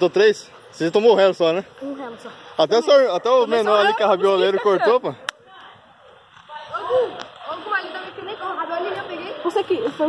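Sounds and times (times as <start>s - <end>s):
man speaking: 0.0s - 5.2s.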